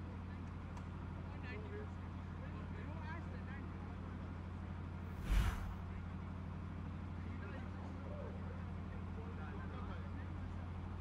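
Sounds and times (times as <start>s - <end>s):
loud rush of noise: 5.2s - 6.0s
steady low hum: 5.2s - 6.0s.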